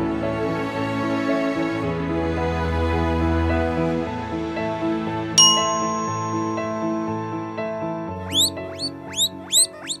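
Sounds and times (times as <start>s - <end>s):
background music: 0.0s - 10.0s
guinea pig squealing: 8.3s - 10.0s.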